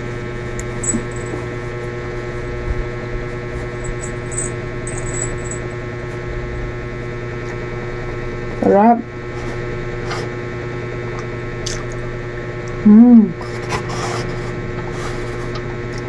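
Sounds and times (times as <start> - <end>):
electrical buzzing hum: 0.0 - 16.0.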